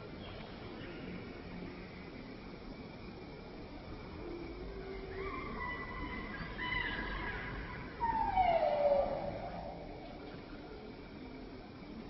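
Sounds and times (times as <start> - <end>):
monkey calls and screams: 5.2 - 9.8.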